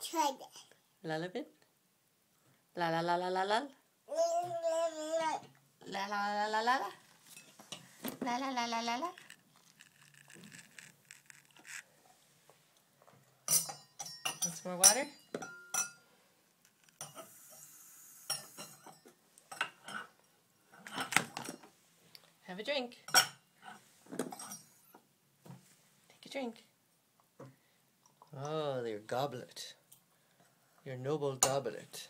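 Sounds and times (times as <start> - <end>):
metal goblet clinking: 13.5 - 16.0.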